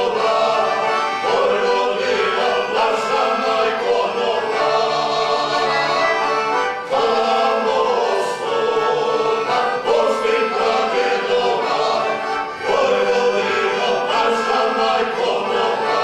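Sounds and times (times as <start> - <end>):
accordion: 0.0 - 16.0
men's group singing: 0.0 - 16.0.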